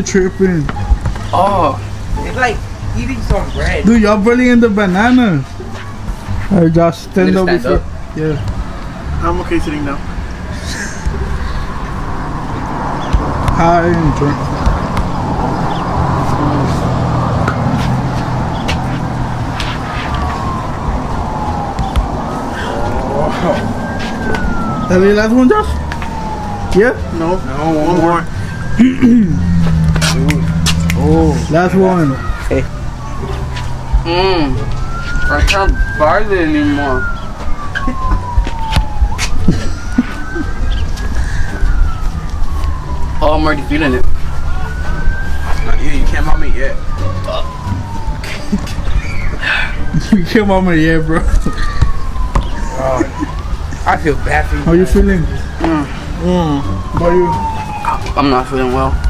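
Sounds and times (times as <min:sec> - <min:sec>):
siren wailing with falling pitch: 0:10.8 - 0:59.0.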